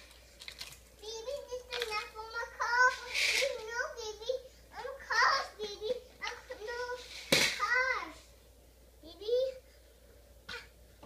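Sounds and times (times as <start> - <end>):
toys clicking: 1.4 - 2.2.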